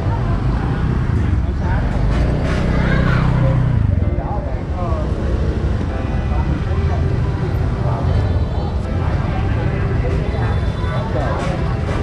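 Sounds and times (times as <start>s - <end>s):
low rumble of motor traffic: 0.0s - 12.0s
people talking: 0.0s - 12.0s.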